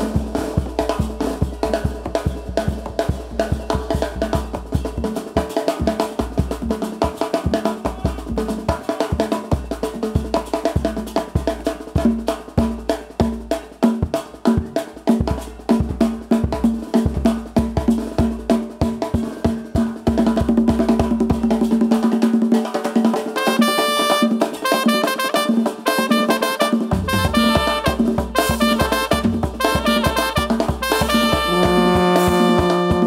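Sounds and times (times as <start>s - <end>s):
congas: 0.0s - 33.0s
drum kit: 0.0s - 33.0s
brass horns: 23.4s - 33.0s.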